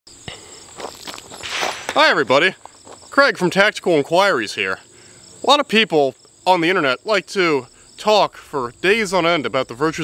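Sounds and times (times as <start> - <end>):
high insect buzz: 0.1 - 3.2, 4.3 - 8.0
footsteps crunching on gravel: 0.4 - 3.9.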